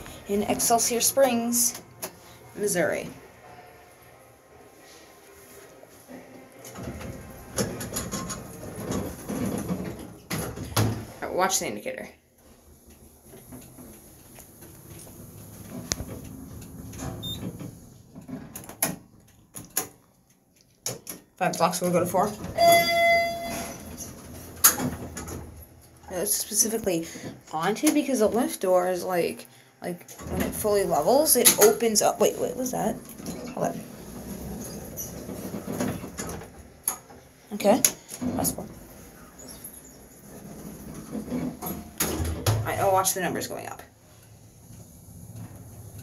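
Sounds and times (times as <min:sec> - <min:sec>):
lift car rumbling: 0:22.3 - 0:25.5.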